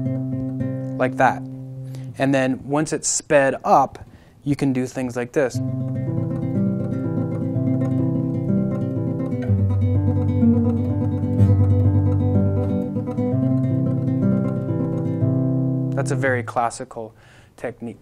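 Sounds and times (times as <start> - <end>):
classical guitar tremolo: 0.0 - 2.2, 5.6 - 16.6.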